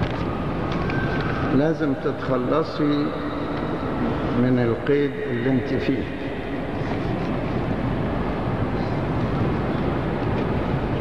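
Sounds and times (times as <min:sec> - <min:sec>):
crowd noise in a hall: 0:00.0 - 0:11.0
speech: 0:01.5 - 0:03.2, 0:04.4 - 0:06.2.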